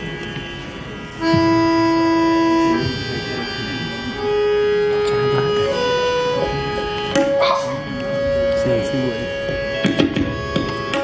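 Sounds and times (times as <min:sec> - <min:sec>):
harmonium long held notes: 0:00.0 - 0:11.0.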